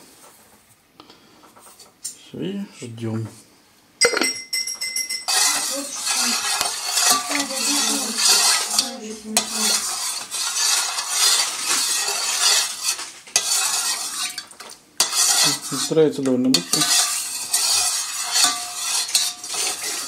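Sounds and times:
sharp ringing clink: 4.0 - 5.3
metal spoon stirring in enamel bowl: 4.0 - 20.0.

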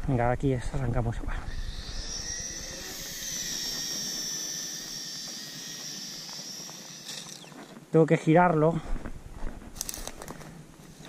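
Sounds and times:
toy drone propellers whining: 1.4 - 7.8.

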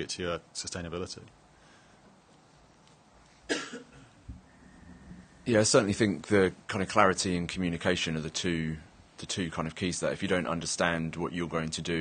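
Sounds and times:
person coughing: 3.5 - 4.1.

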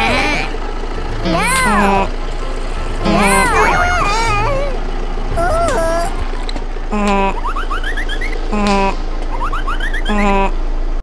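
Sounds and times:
background music: 0.0 - 4.8
cartoon voices squealing and babbling: 1.2 - 2.1, 3.0 - 4.8, 5.4 - 6.2, 10.1 - 10.6.

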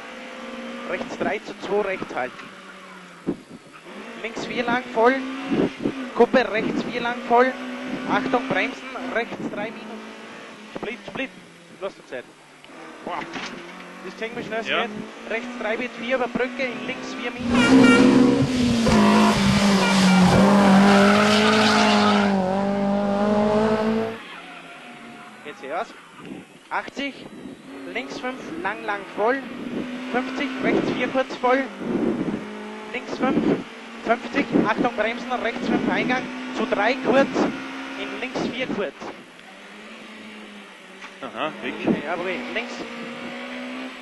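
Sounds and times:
car engine revving high: 0.0 - 44.0.

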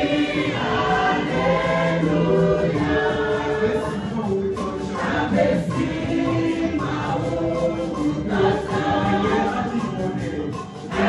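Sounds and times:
church choir singing a hymn: 0.0 - 11.0
women singing into microphones: 0.0 - 11.0.

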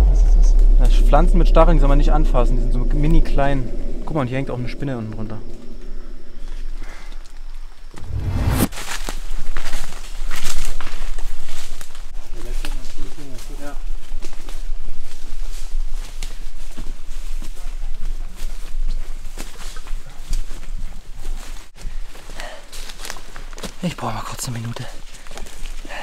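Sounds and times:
heavy low thump: 0.0 - 6.8, 7.9 - 8.9
footsteps on leaves and twigs: 8.1 - 26.0.

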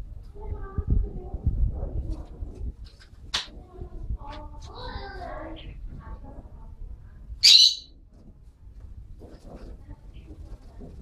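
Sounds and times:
bird giving high call: 7.4 - 7.9.

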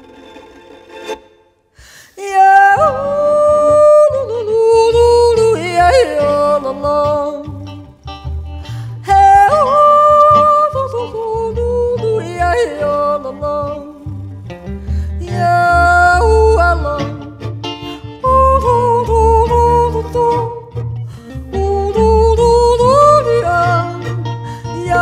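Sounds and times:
folk band playing: 0.0 - 1.4, 2.8 - 25.0.

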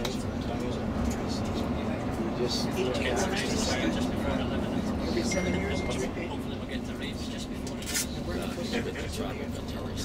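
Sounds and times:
bus engine and road rumble: 0.0 - 10.0
people talking: 0.0 - 10.0.

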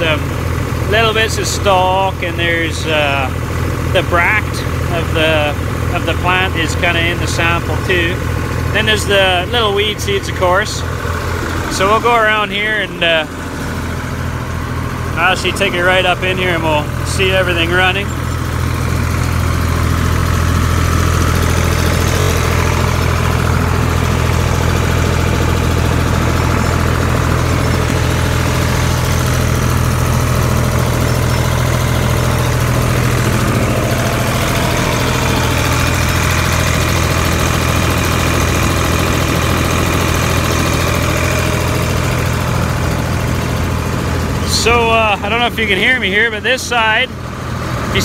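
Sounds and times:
seed cleaning machine droning: 0.0 - 48.0.

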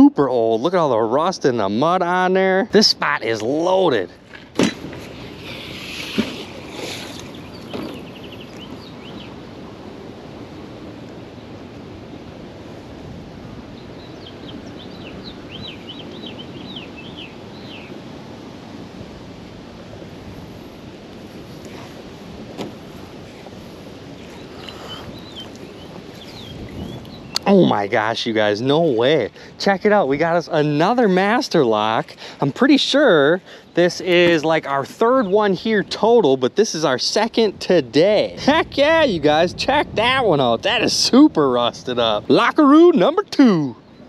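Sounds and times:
wind: 0.0 - 44.0
water: 2.7 - 39.0
magnet landing knock: 4.3 - 5.1.

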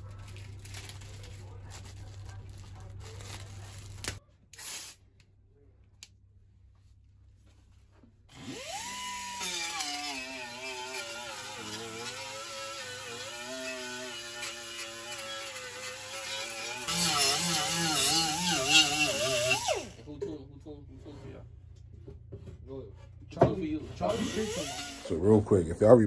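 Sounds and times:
air die grinder whining: 8.3 - 20.0, 24.0 - 25.4.

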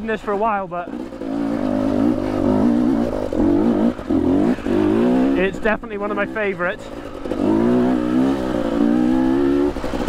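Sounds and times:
two-stroke engine revving: 0.0 - 10.0.

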